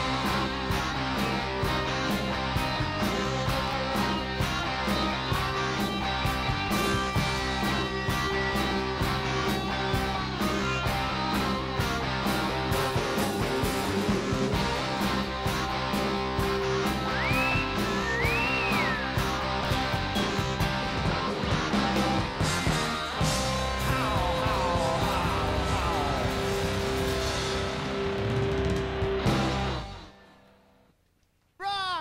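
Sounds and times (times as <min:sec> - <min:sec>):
drums with steady beat: 0:00.0 - 0:30.2
electric guitar: 0:00.0 - 0:30.6.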